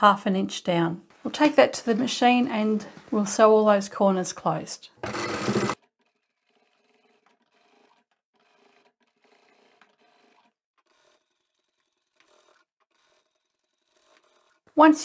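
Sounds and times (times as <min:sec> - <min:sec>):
sewing machine stitching: 0:05.0 - 0:15.0.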